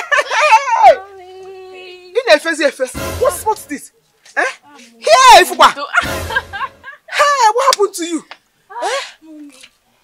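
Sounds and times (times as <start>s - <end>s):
woman's high-pitched cries of delight: 0.1s - 2.0s.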